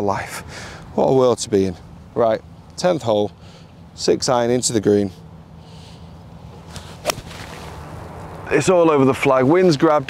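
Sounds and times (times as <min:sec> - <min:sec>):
golf club striking ball: 0:06.7 - 0:07.9.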